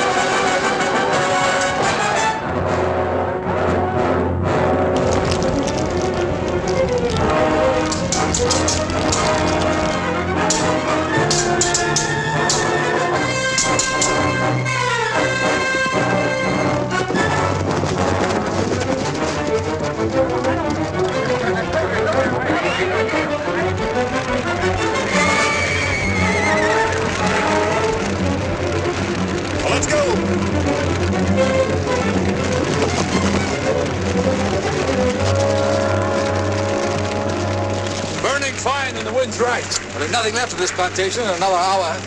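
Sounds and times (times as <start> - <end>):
orchestral music with brass: 0.0 - 42.0.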